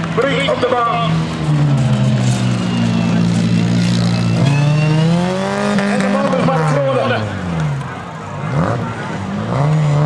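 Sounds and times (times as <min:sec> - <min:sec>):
car engine running hard: 0:00.0 - 0:10.0.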